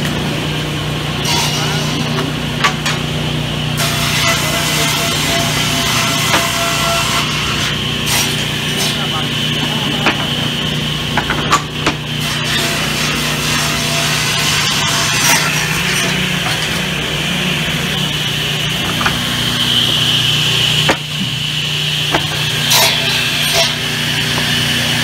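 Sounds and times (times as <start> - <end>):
circular saw cutting wood: 1.0 - 25.0.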